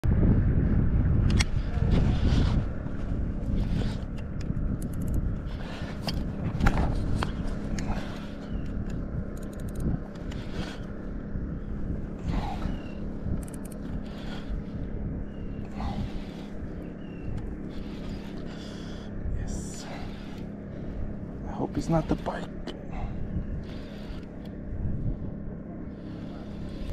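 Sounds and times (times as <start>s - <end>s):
wind rumbling on microphone: 0.0s - 26.9s
fishing reel clicks and knocks: 4.4s - 5.2s, 8.6s - 10.4s, 13.4s - 13.9s.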